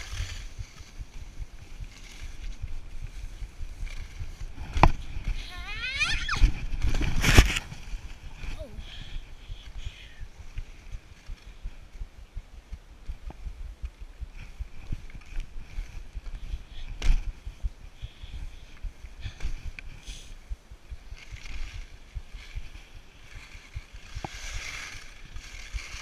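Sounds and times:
skis scraping over snow: 0.0s - 9.1s, 13.9s - 26.0s
wind rumbling on microphone: 0.0s - 26.0s.

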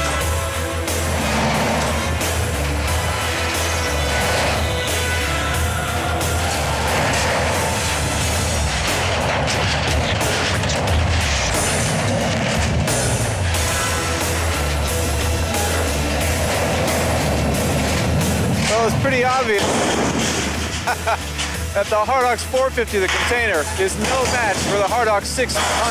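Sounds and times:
background music: 0.0s - 25.9s
excavator running: 0.0s - 25.9s
steel cracking and crunching: 0.0s - 25.9s.

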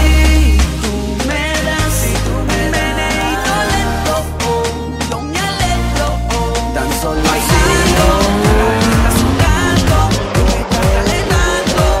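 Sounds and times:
music with heavy beat: 3.3s - 12.0s
car engines revving: 7.1s - 11.8s.

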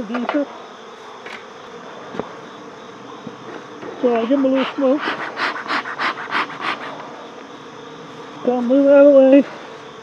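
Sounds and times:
bellows puffing air: 4.4s - 7.1s.

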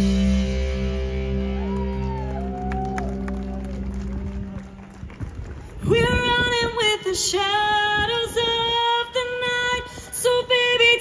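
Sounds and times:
live rock band music: 0.0s - 4.7s.

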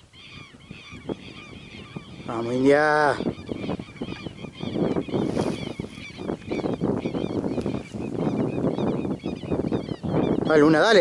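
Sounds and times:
birds calling harshly: 0.0s - 11.0s
wind buffeting microphone: 0.0s - 11.0s.

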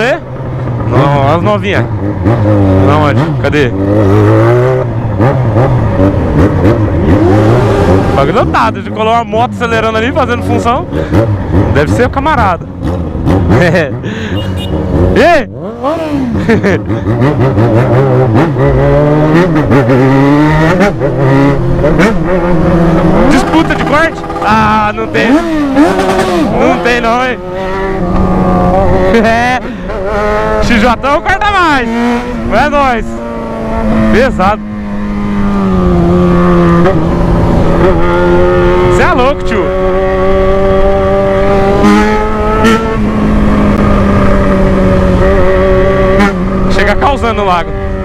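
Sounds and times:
motorcycle engine revving: 0.0s - 48.0s.

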